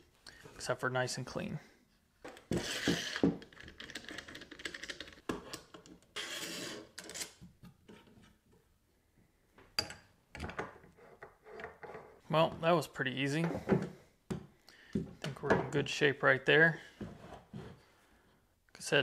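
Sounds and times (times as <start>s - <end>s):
metal scraping against wood: 2.4s - 4.4s.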